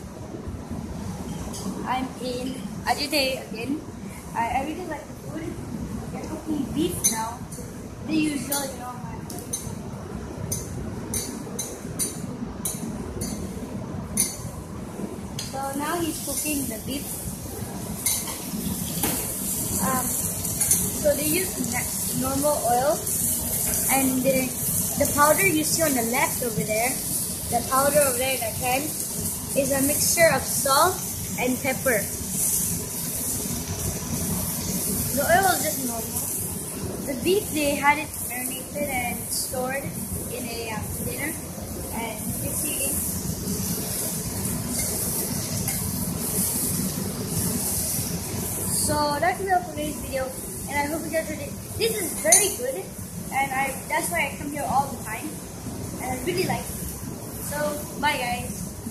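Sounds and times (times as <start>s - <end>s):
beef sizzling on a griddle: 15.4s - 58.9s.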